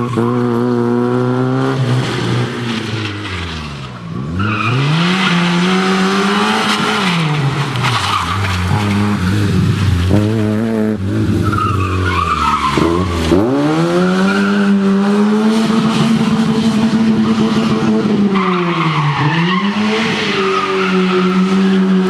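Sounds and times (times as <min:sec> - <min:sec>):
car engine revving: 0:00.0 - 0:18.5
tyres squealing: 0:11.4 - 0:13.4.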